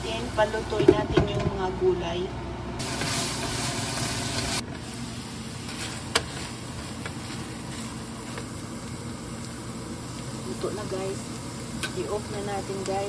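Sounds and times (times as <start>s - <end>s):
food sizzling in frying pan: 2.8s - 13.0s.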